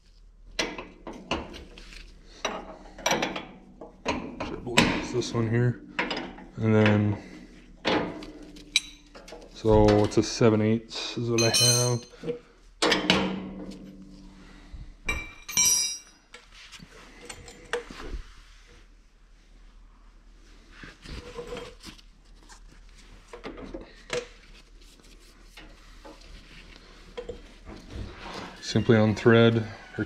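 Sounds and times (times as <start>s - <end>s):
wrench clinking on metal fittings: 11.4s - 12.2s, 15.1s - 16.2s.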